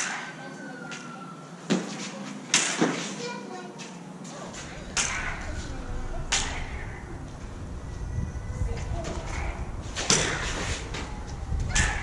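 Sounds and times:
low steady hum: 0:04.2 - 0:12.0
lightsaber clash hits: 0:04.6 - 0:07.4.

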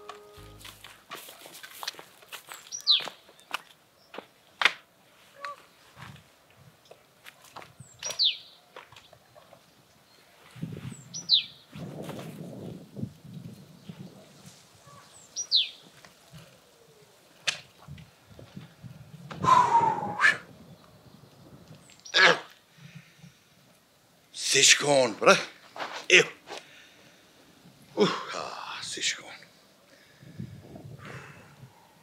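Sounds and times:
bird chirping: 0:02.6 - 0:03.5, 0:07.8 - 0:10.3, 0:10.9 - 0:11.6, 0:14.8 - 0:15.8.

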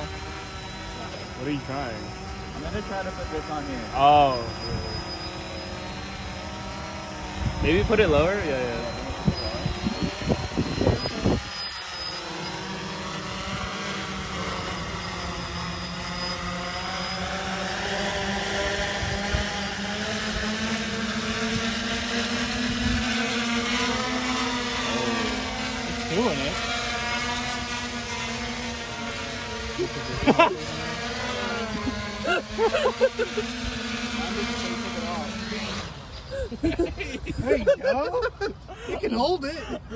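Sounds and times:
drones hovering with propeller whine: 0:00.0 - 0:39.9.

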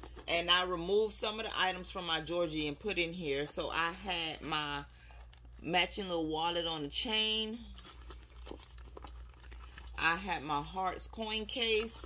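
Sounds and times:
rustling inside a handbag: 0:00.0 - 0:12.0.

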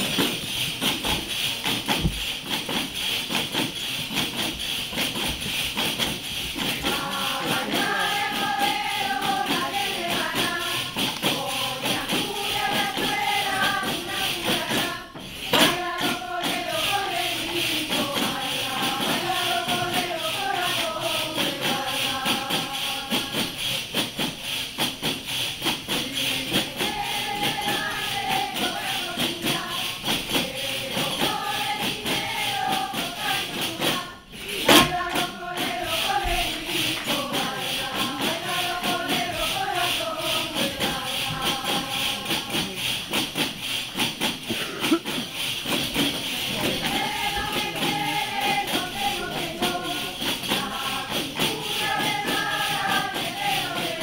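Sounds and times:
frame drums jingling: 0:00.0 - 0:54.0
group singing a folk song: 0:00.0 - 0:54.0.

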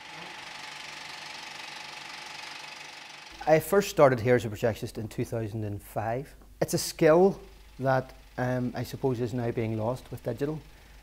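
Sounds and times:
film projector mechanical clatter: 0:00.0 - 0:03.6, 0:07.5 - 0:11.0.

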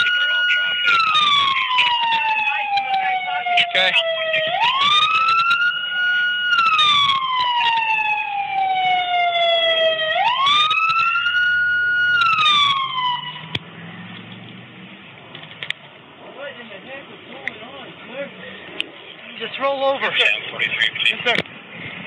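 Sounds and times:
emergency vehicle siren wailing: 0:00.0 - 0:16.5.

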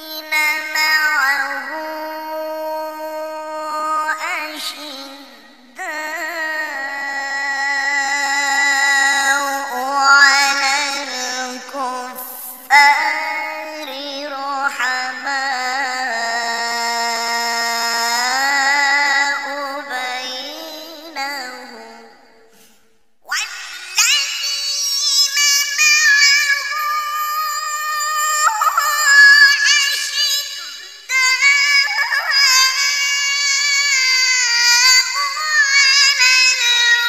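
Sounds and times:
man reciting long melodic note: 0:00.0 - 0:22.3, 0:24.2 - 0:37.0.

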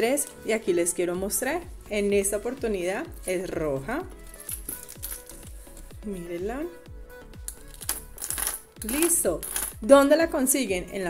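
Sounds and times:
background music with steady beat: 0:00.0 - 0:11.0
blister pack crinkling: 0:04.4 - 0:05.9, 0:07.5 - 0:09.8.

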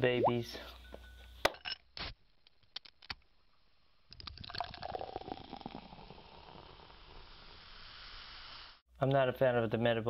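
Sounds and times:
liquid pouring and bubbling: 0:04.1 - 0:07.6.

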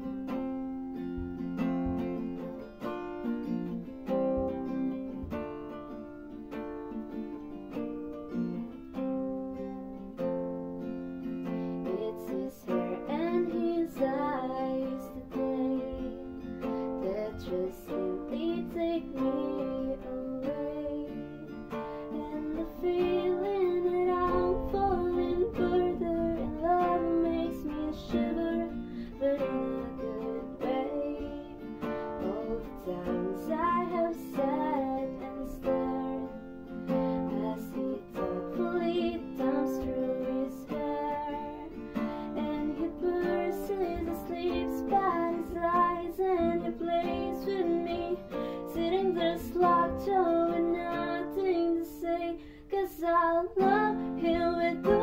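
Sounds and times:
acoustic guitar strumming: 0:00.0 - 0:55.0.

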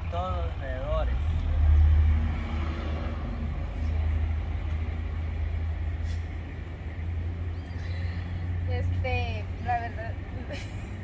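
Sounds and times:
low rumble of road vehicles: 0:00.0 - 0:11.0.

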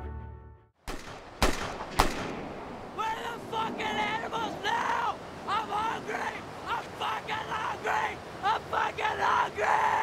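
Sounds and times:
sharp cracks: 0:00.8 - 0:02.8
steady rushing noise: 0:01.0 - 0:10.0.

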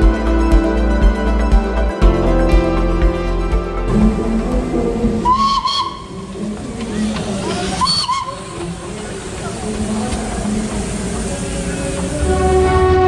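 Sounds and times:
steam locomotive hissing steam: 0:05.1 - 0:13.0
train whistle toots: 0:05.2 - 0:06.4, 0:07.7 - 0:08.6, 0:12.1 - 0:13.0.

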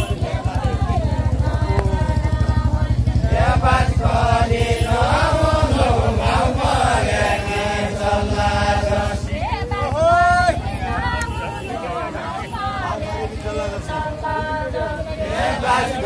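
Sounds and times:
men singing in chant style: 0:00.0 - 0:16.0.

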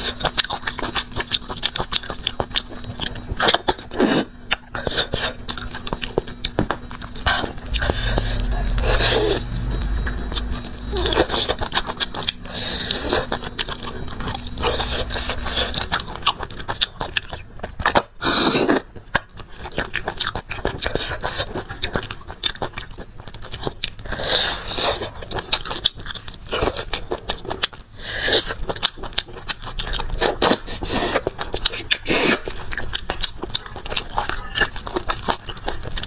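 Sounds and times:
chewing: 0:00.0 - 0:36.0.

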